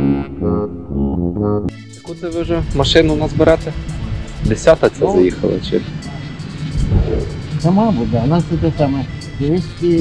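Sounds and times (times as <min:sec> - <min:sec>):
background music: 0:00.0 - 0:10.0
low rumble: 0:05.8 - 0:08.2.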